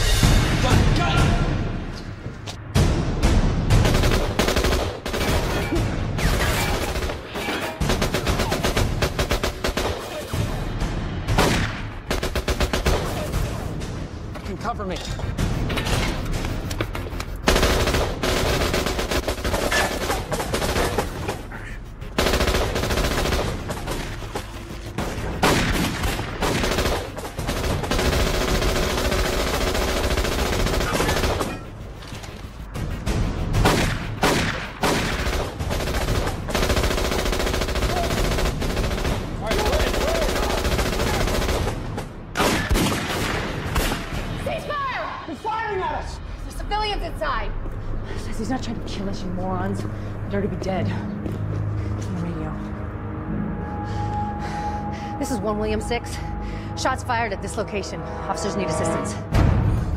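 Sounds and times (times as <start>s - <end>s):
film music score: 0.0s - 59.9s
automatic gunfire: 25.4s - 31.5s.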